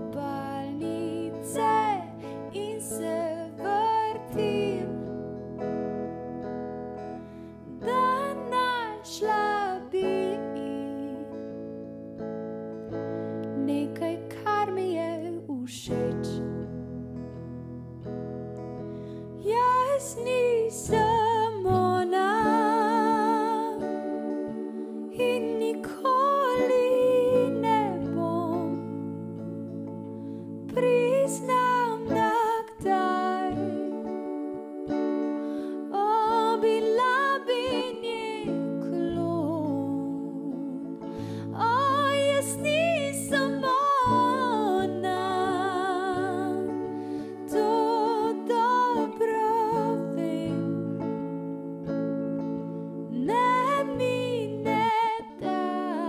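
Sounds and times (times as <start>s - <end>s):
woman singing wordless notes: 0.0s - 5.4s, 7.7s - 11.8s, 13.5s - 16.8s, 19.4s - 35.0s, 35.7s - 51.0s, 52.6s - 56.0s
soft plucked strings: 0.0s - 56.0s
soft sustained chords: 15.9s - 55.9s.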